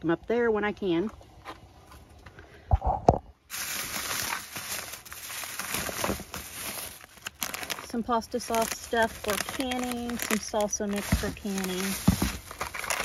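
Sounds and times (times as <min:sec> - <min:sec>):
plastic bags rustling: 0:03.5 - 0:13.0
dull thumps: 0:10.1 - 0:13.0.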